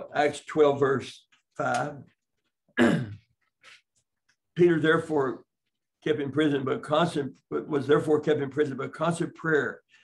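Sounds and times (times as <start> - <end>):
man clearing his throat: 2.8 - 3.3.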